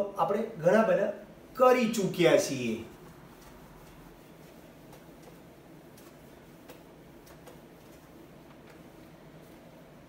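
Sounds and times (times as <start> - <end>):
low room hum: 0.0 - 10.0
hand wiping whiteboard: 1.6 - 10.0.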